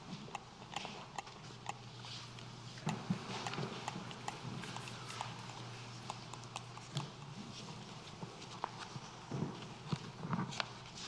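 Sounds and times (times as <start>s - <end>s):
low room hum: 0.0s - 11.0s
faint footsteps: 1.9s - 11.0s.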